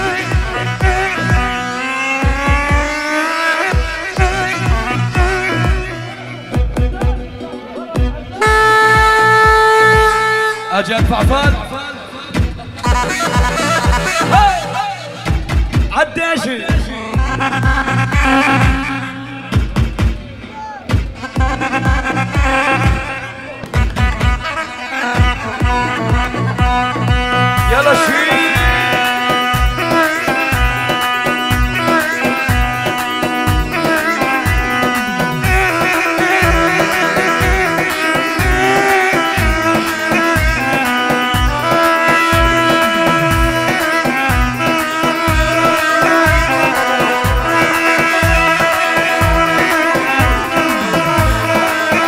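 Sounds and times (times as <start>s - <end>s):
dance music with heavy drum beat: 0.0s - 52.0s
pitch-bending melodic lead: 0.0s - 52.0s.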